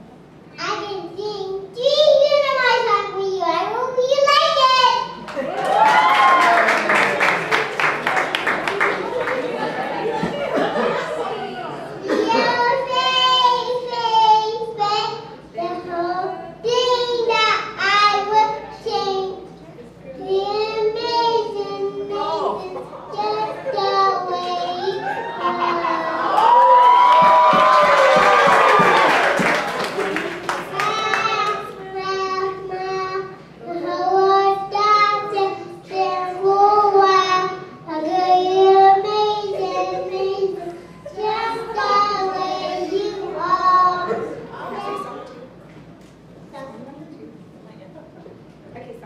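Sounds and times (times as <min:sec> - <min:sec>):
child singing into microphone: 0:12.0 - 0:26.3, 0:30.7 - 0:45.3.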